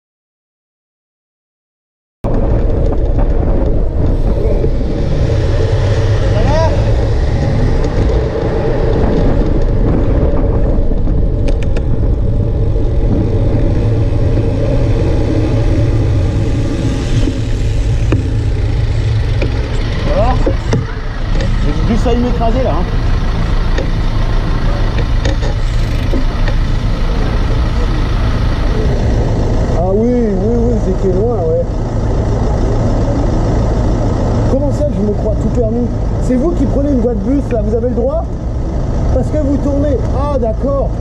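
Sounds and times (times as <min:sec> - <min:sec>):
tyres on road: 0:02.2 - 0:41.0
wind on microphone: 0:02.3 - 0:21.9
car engines: 0:02.3 - 0:41.0.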